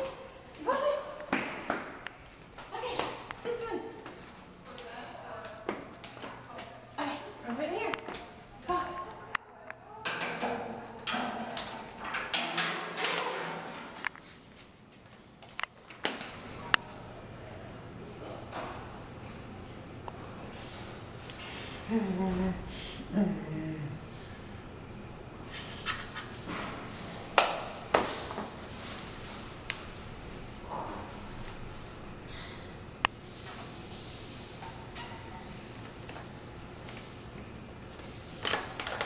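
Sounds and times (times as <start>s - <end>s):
indistinct low voices: 21.6s - 24.3s.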